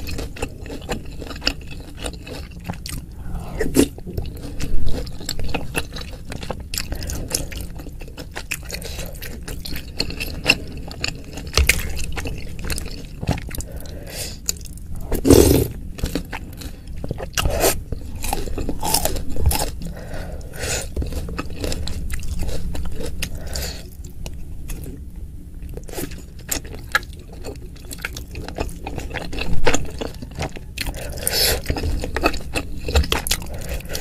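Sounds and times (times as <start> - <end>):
food crunching: 0.0 - 25.0, 25.6 - 34.0
chewing with wet mouth clicks: 25.6 - 34.0.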